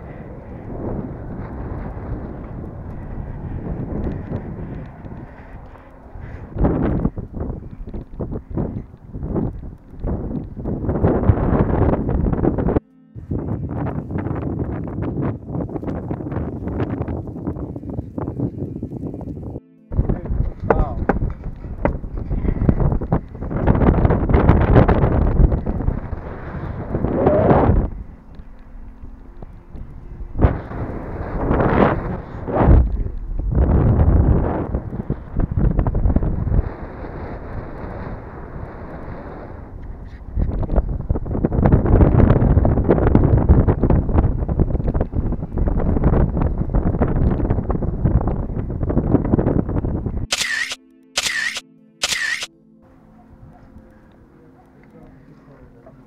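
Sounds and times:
wind buffeting microphone: 0.0s - 50.4s.

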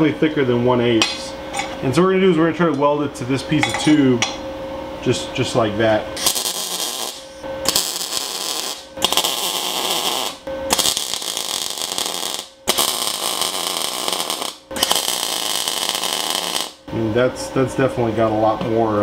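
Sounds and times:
welding arc: 6.2s - 16.9s.

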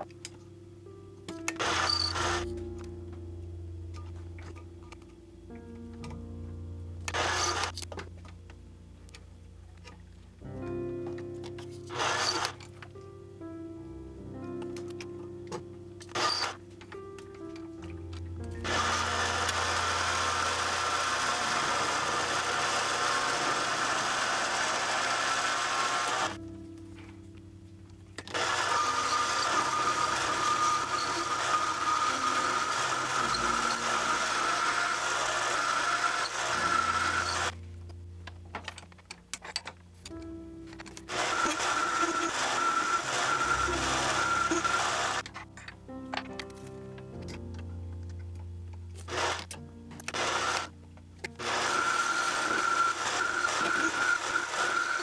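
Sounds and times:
background music: 0.0s - 55.0s
lathe motor whine: 1.6s - 2.5s, 7.1s - 7.7s, 11.9s - 12.6s, 16.1s - 16.6s, 18.6s - 26.4s, 28.3s - 37.6s, 41.1s - 45.2s, 49.1s - 49.5s, 50.1s - 50.7s, 51.4s - 55.0s.

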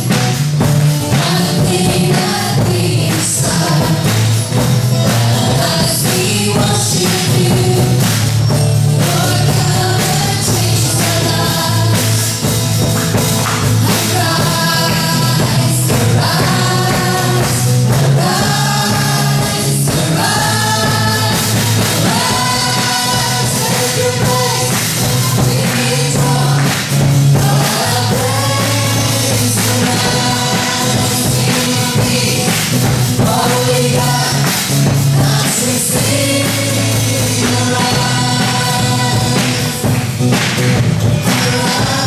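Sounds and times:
gospel band playing: 0.0s - 42.0s
voices singing together: 0.0s - 42.0s.

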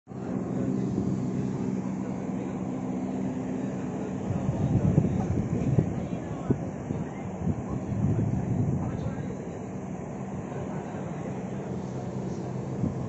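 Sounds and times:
steady low hum: 0.1s - 13.0s.

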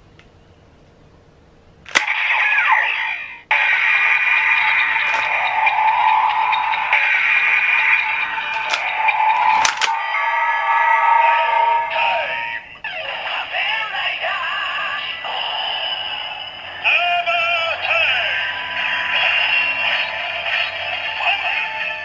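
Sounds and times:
electronic toy music: 1.9s - 13.8s, 14.8s - 22.0s.

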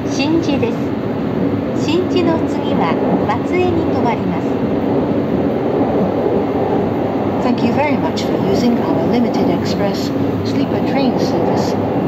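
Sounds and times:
train running low rumble: 0.0s - 12.0s.

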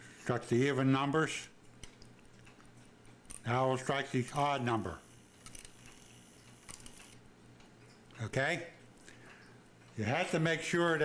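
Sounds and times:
clock mechanism clicks: 1.7s - 11.0s.

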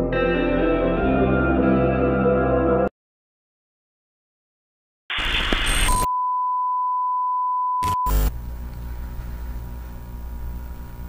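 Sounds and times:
burst of static: 5.1s - 6.1s
low hum and hiss: 8.3s - 11.0s.

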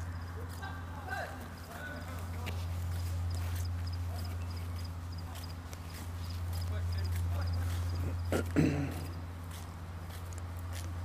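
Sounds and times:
faint distant voices: 0.0s - 10.1s
steady low hum: 0.0s - 11.0s.

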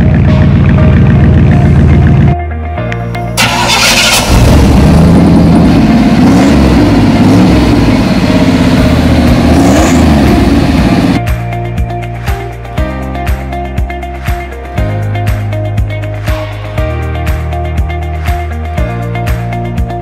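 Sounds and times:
background music: 0.0s - 20.0s
truck engine starting and revving: 3.4s - 11.2s.

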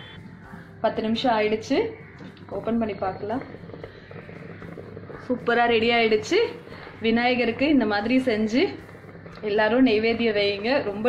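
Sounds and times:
woman speaking: 0.8s - 3.5s, 5.2s - 8.8s, 9.4s - 11.0s.

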